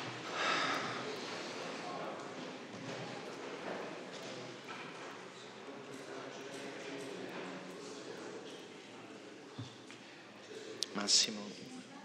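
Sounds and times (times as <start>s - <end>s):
faint murmur of voices: 0.0s - 12.0s.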